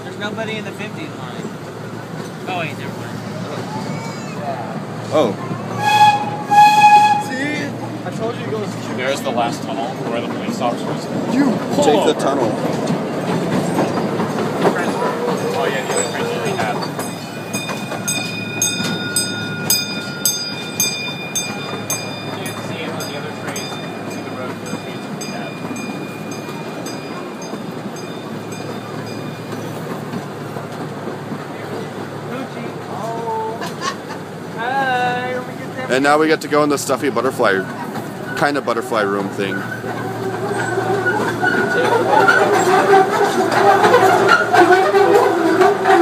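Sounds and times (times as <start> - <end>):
train rolling rumble with clicking: 0.0 - 46.0.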